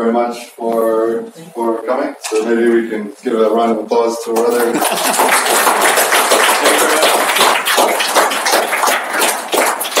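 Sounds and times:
audience applauding: 0:04.5 - 0:10.0.

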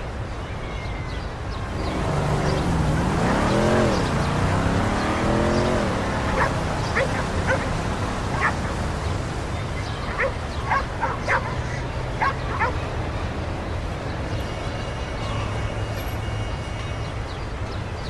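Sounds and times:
distant traffic hum: 0:00.0 - 0:18.0.

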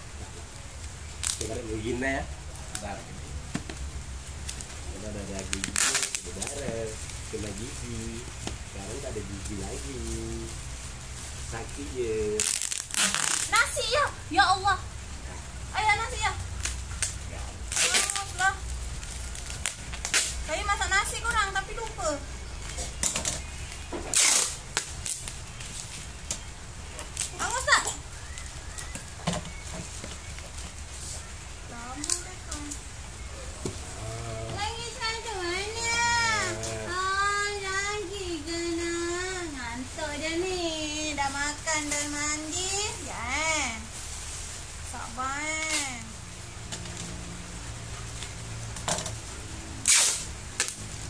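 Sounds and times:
bubble wrap crackling: 0:00.0 - 0:15.0, 0:15.7 - 0:51.0
packing tape ripping: 0:01.2 - 0:01.6, 0:05.4 - 0:06.7, 0:12.3 - 0:13.8, 0:16.6 - 0:20.5, 0:24.1 - 0:26.0, 0:49.8 - 0:51.0
baby sing-song vocal sound: 0:35.5 - 0:39.9.

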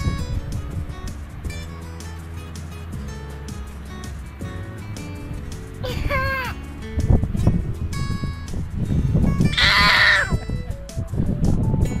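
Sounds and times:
background music: 0:00.0 - 0:12.0
toddler squealing: 0:05.8 - 0:06.6, 0:09.5 - 0:10.5.

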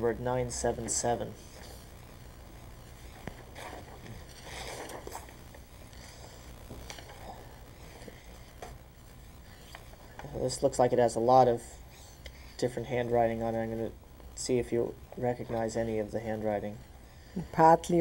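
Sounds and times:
steady low hum: 0:00.0 - 0:18.0
paper rustling: 0:03.2 - 0:05.4.

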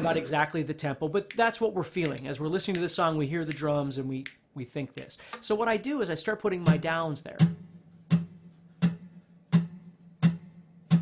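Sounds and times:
acoustic guitar strums: 0:06.6 - 0:11.0.

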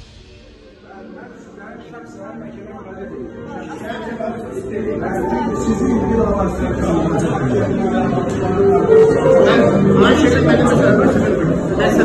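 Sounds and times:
men talking: 0:00.7 - 0:12.0.

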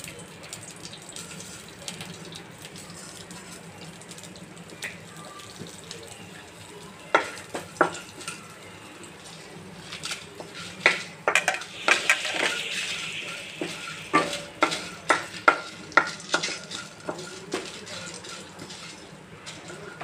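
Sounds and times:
spices sizzling in a pan: 0:00.0 - 0:20.0
wooden spatula scraping a pan: 0:09.7 - 0:20.0.

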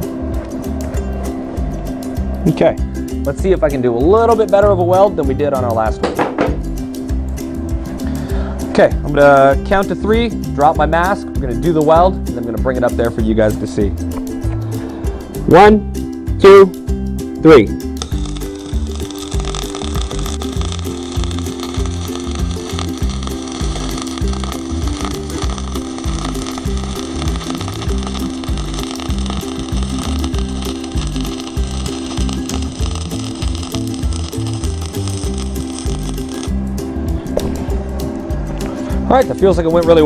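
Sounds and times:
background music with steady beat: 0:00.0 - 0:40.0
arc welder hissing: 0:17.9 - 0:36.6.

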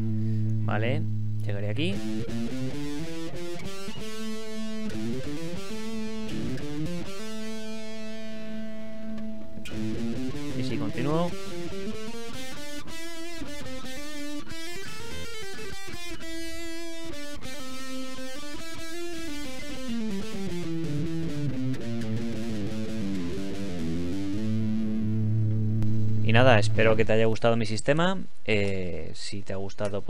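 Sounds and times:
electric guitar scale run: 0:01.8 - 0:27.1.

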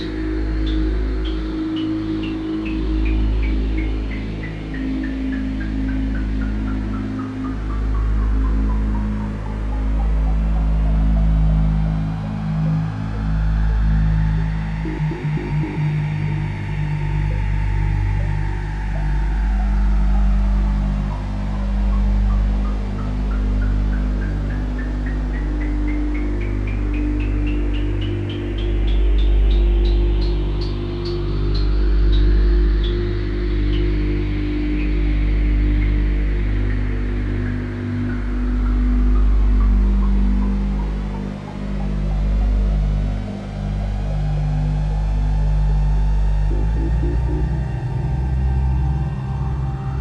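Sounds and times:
low synth drones: 0:00.0 - 0:50.0.

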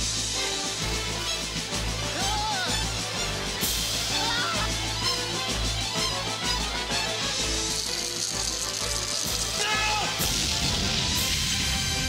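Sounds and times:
theme music with held notes: 0:00.0 - 0:12.0.

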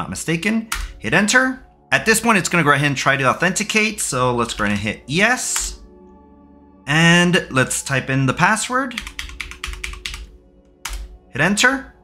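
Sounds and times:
computer keyboard typing: 0:08.9 - 0:11.2.

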